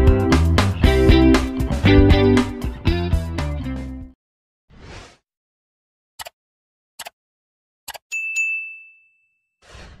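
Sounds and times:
bell ding: 8.1s - 9.6s.

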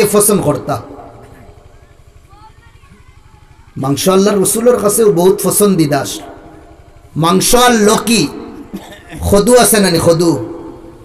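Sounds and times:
amplified speech: 0.0s - 11.0s.

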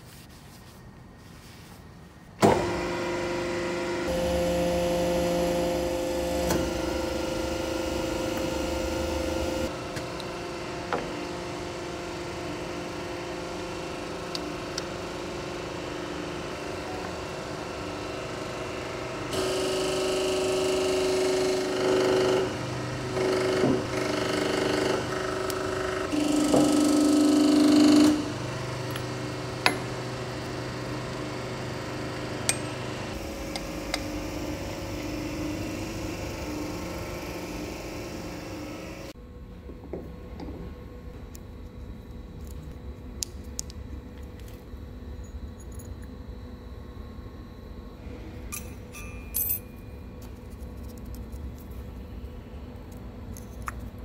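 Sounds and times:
workshop machinery hum: 0.0s - 54.0s.

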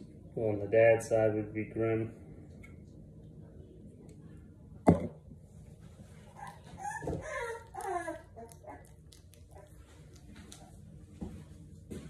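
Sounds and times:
puppy whining: 6.2s - 10.8s.

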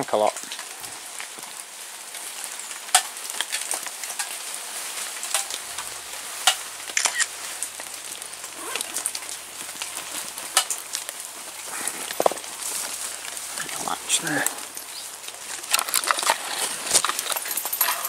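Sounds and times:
rain pattering on leaves: 0.0s - 18.0s
sharp water drops landing: 2.7s - 4.4s, 5.2s - 16.4s.

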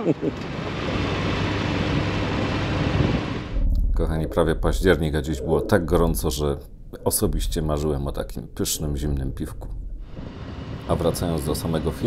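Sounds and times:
wind noise on microphone: 2.8s - 4.6s.

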